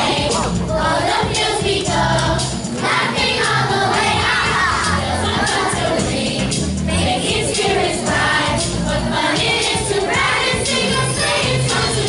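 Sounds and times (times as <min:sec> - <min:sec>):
children's choir singing: 0:00.0 - 0:12.0
steady bass line: 0:00.0 - 0:12.0.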